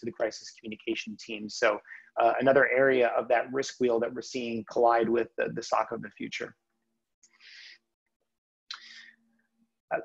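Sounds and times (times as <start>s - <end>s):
person breathing: 1.8s - 2.2s, 7.2s - 8.0s, 8.7s - 9.4s.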